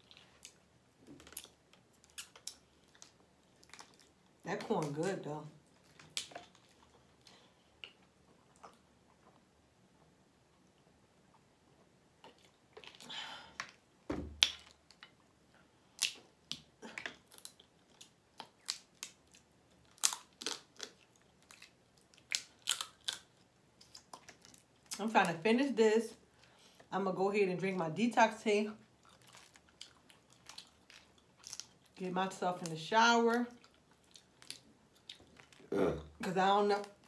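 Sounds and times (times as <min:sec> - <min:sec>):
thump: 0:14.1 - 0:14.4
crawfish shells cracking: 0:15.9 - 0:25.0, 0:29.0 - 0:32.0, 0:33.5 - 0:35.7.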